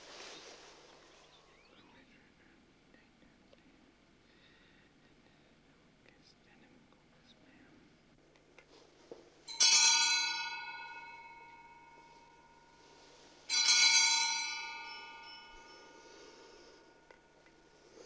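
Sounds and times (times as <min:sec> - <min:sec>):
bell ringing: 0:09.5 - 0:18.0.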